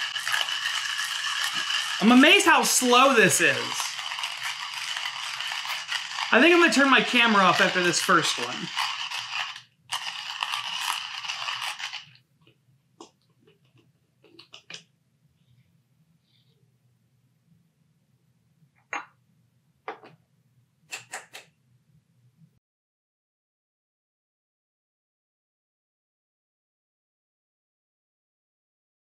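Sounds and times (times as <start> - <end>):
coffee grinder crunching beans: 0.0 - 12.2
grinder handling clicks and scrapes: 0.0 - 12.2.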